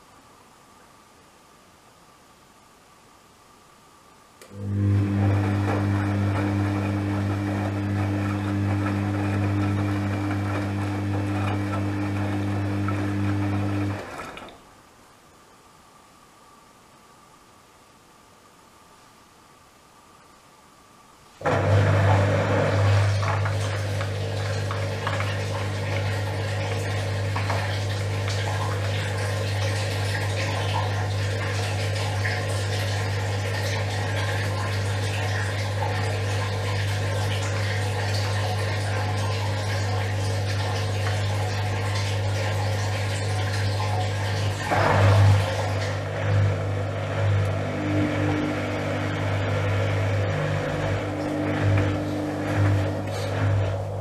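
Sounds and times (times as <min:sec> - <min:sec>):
water rushing through washing machine: 0:04.4 - 0:14.8, 0:21.4 - 0:54.0
washing machine drum tumbling: 0:43.6 - 0:54.0.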